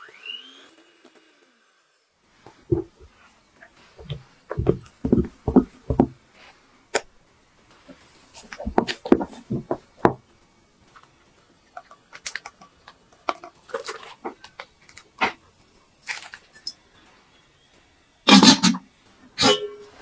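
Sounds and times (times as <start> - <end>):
batter squelching and tapping: 2.5 - 6.2, 7.9 - 10.2.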